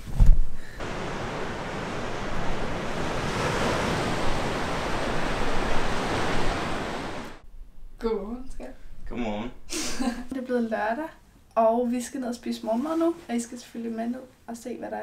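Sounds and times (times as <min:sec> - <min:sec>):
wind: 0:00.0 - 0:08.0
waves breaking against a seawall: 0:00.8 - 0:07.4.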